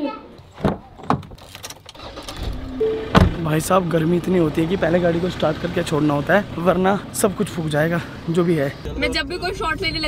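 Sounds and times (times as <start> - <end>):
car door click: 0.6 - 3.4
car engine idling: 2.0 - 10.0.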